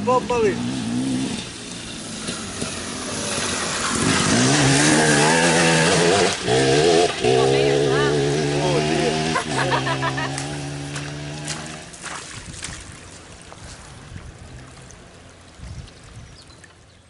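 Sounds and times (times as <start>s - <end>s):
motorcycle engine: 0.0s - 12.0s
water splashing: 1.6s - 16.9s.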